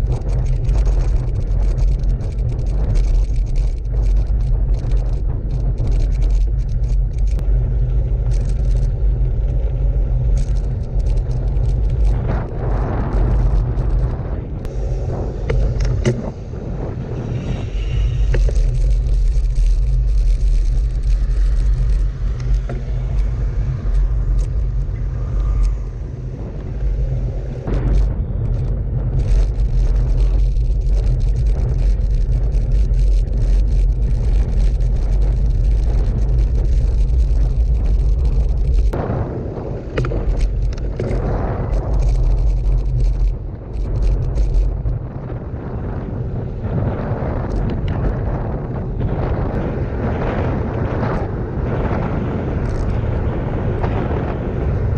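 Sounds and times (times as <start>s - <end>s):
rattling clicks: 0.0s - 14.7s, 18.1s - 25.9s, 26.8s - 39.0s, 39.9s - 45.0s
bike rolling over gravel: 0.0s - 54.9s
wind buffeting: 0.0s - 54.9s.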